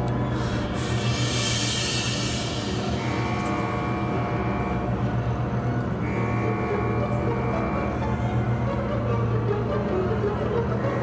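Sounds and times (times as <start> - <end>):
ominous low drone: 0.0 - 11.0.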